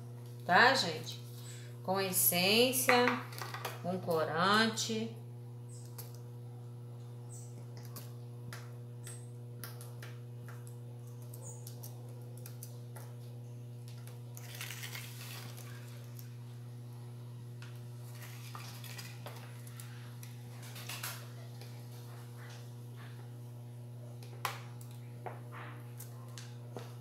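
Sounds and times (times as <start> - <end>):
plastic rustle: 14.4 - 16.0.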